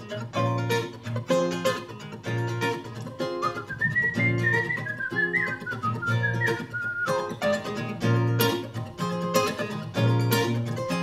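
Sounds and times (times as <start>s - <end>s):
acoustic guitar strumming: 0.0s - 11.0s
whistled melody: 3.2s - 7.6s.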